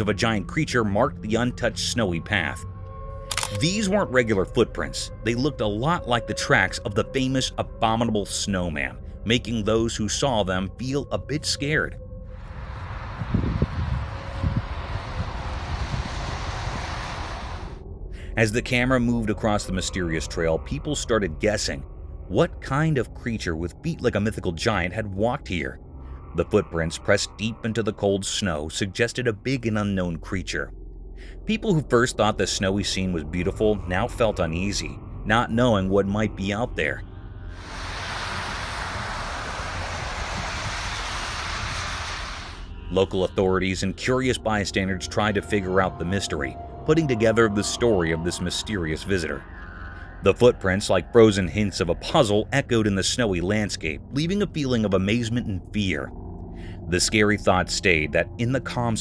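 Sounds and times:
low hum: 0:00.0 - 0:59.0
low rumble: 0:08.5 - 0:59.0
steady rushing noise: 0:12.4 - 0:17.8, 0:37.5 - 0:42.7
steady hiss: 0:37.6 - 0:42.7.

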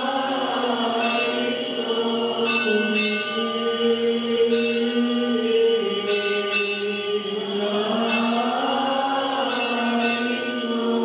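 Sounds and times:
bell ringing: 0:00.0 - 0:11.0
chant in long held notes: 0:00.0 - 0:11.0.

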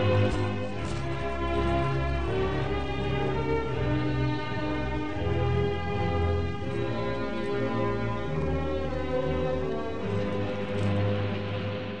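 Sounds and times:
instrumental music sustained chord: 0:00.0 - 0:12.0.

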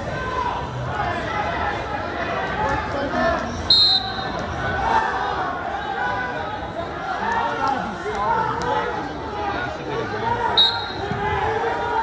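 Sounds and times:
murmur of crowd voices: 0:00.0 - 0:12.0
referee's whistle blast: 0:03.7 - 0:04.4, 0:10.6 - 0:11.1.

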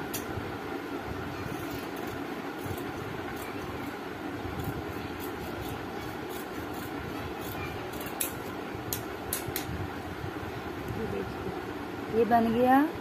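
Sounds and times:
fan whirring: 0:00.0 - 0:13.0.

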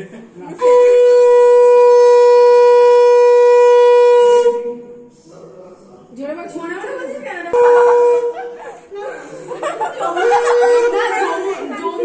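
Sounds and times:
conch shell blown: 0:00.6 - 0:05.1, 0:07.5 - 0:08.6.

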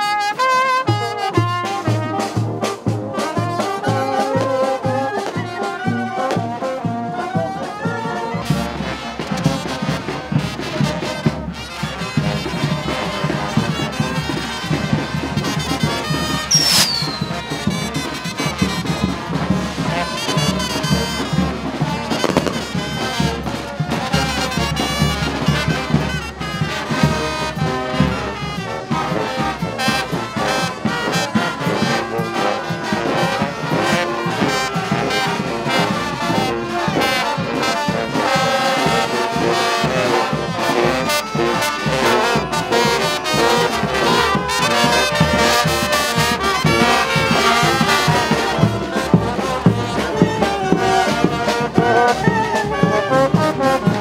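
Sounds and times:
brass band marching: 0:00.0 - 0:54.0
sharp bang with falling whistle: 0:16.5 - 0:17.4.

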